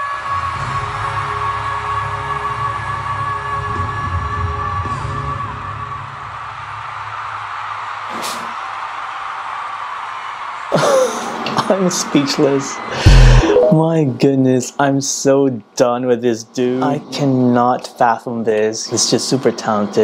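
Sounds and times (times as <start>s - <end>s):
crowd noise: 12.8s - 14.0s
live band playing: 13.0s - 13.8s.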